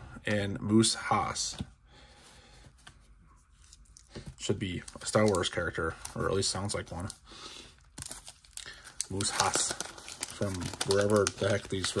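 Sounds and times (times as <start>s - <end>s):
paper crinkling: 2.8s - 7.2s, 7.8s - 12.0s
waxed paper wrapper tearing: 8.0s - 12.0s.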